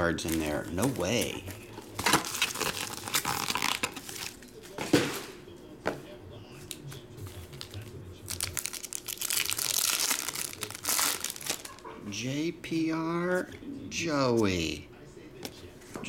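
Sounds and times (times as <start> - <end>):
foil wrappers crinkling: 0.0 - 4.7, 6.6 - 11.8.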